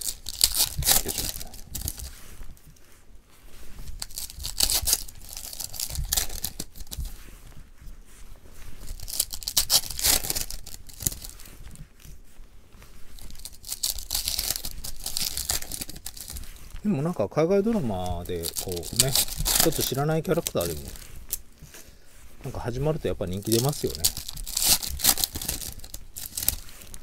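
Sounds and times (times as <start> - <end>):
foil wrapper crinkling and tearing: 0.0 - 2.6, 3.6 - 7.2, 8.8 - 12.2, 12.9 - 27.0.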